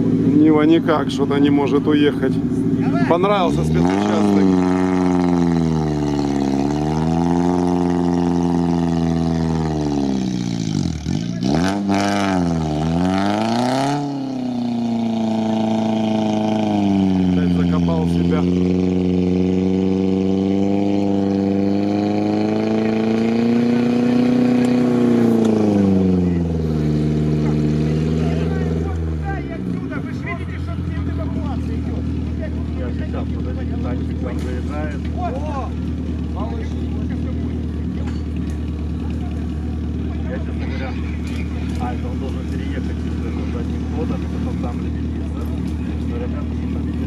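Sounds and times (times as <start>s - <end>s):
off-road engine revving hard: 0.0s - 47.0s.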